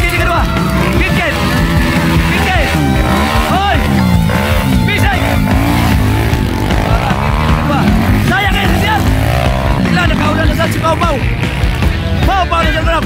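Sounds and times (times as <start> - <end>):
motorcycle engines revving: 0.0 - 13.0
music: 0.0 - 13.0
voices: 0.0 - 13.0.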